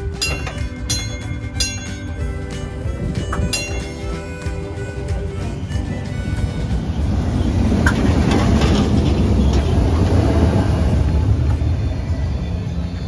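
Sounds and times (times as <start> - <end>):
streetcar rumbling on rails: 0.0 - 13.0
wheels clicking on rails: 0.0 - 13.0.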